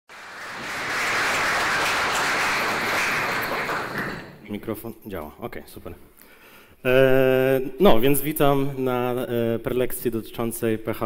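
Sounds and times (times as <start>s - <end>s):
audience applauding: 0.1s - 4.5s.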